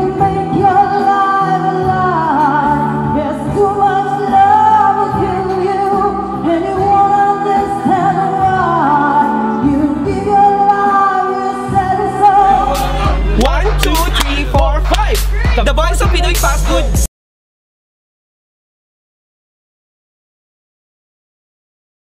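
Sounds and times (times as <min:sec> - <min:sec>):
accompanying music: 0:00.0 - 0:17.1
man singing into a microphone: 0:12.0 - 0:17.0.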